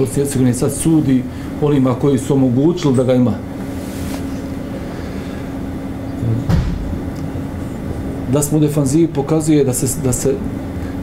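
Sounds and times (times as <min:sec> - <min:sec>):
low mechanical hum: 0:00.0 - 0:11.0
low thump: 0:06.5 - 0:07.0.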